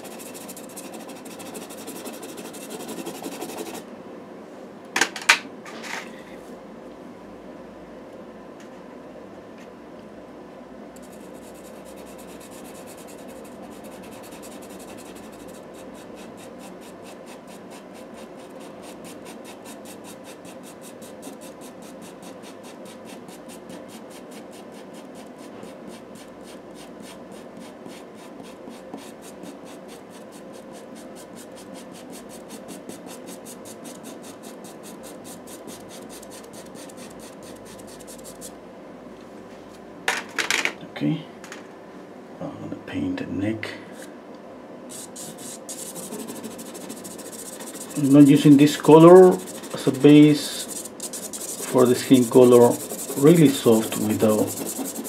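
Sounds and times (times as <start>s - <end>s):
pastel pencil scratching on paper: 0.0s - 3.8s, 11.0s - 38.5s, 44.9s - 55.0s.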